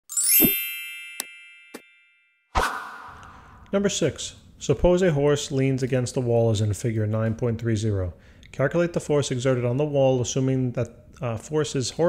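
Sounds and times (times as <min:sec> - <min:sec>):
bright ringing chime: 0:00.1 - 0:03.6.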